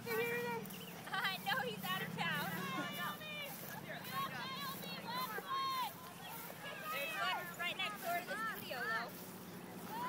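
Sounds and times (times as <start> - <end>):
distant voices calling out: 0.0 - 10.0.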